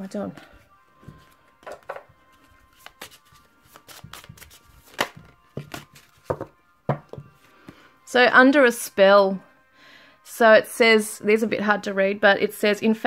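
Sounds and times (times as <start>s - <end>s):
soft background music: 0.0s - 13.0s
cards tapping and slapping on table: 1.0s - 2.1s, 2.8s - 7.3s.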